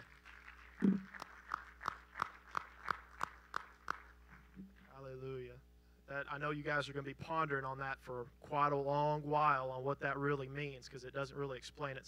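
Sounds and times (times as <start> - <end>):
hand claps in steady rhythm: 0.0 - 4.9.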